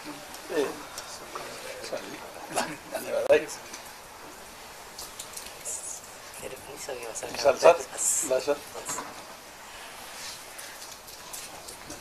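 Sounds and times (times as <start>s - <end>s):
rustles: 0.0s - 12.0s.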